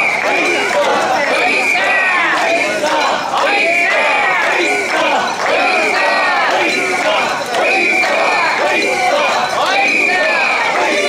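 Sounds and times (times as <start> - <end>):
crowd chanting in unison: 0.0 - 11.0.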